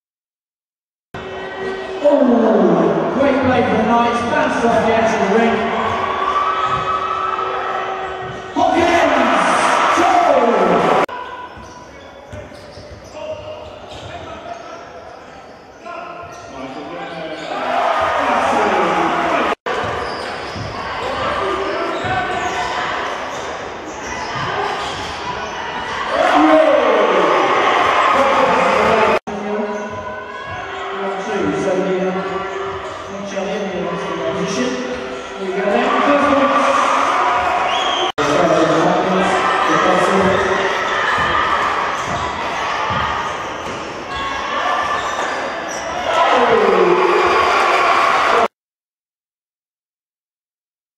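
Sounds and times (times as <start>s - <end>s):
voices and crowd noise: 1.2s - 48.5s
basketball bouncing on court: 41.1s - 43.9s.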